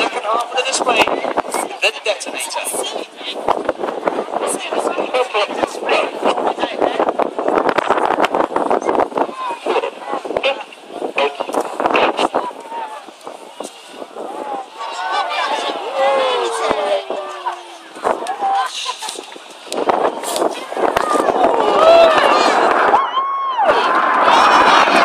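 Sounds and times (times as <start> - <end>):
people's voices: 0.0 - 25.0
wind buffeting microphone: 0.0 - 25.0.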